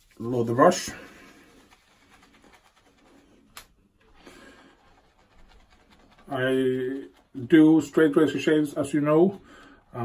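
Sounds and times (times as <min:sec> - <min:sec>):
shaving brush swishing on soap: 0:00.0 - 0:10.0.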